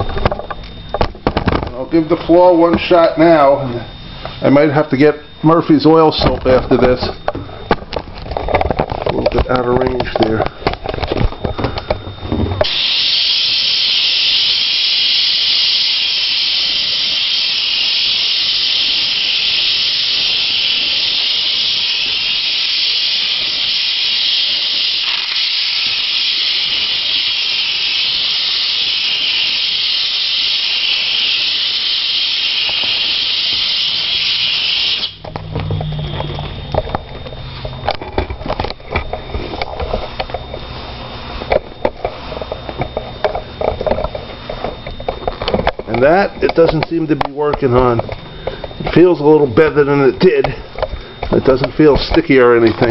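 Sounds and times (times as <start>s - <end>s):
steam cleaner hissing: 12.6s - 35.2s.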